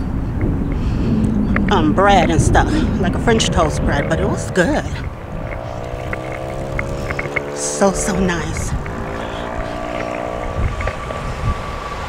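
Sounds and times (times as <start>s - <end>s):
motorboat engine humming: 0.0s - 12.0s.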